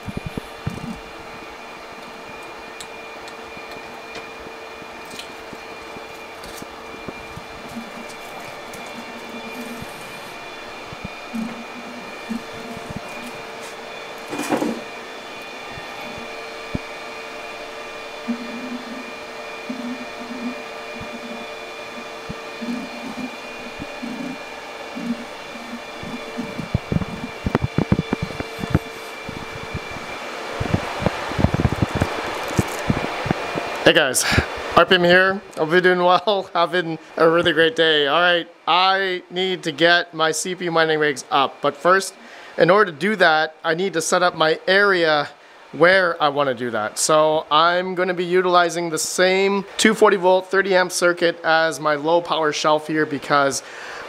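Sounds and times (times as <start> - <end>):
computer cooling fans whirring: 0.0 - 54.0.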